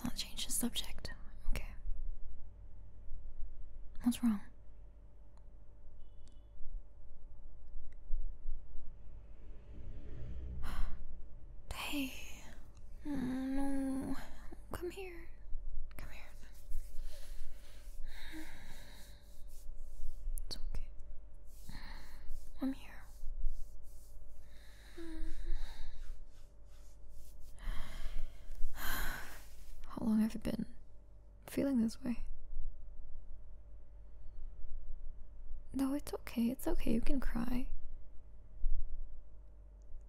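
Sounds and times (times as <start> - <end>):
woman breathing in: 16.9 - 19.7, 21.5 - 22.5, 24.4 - 26.5, 27.5 - 29.8.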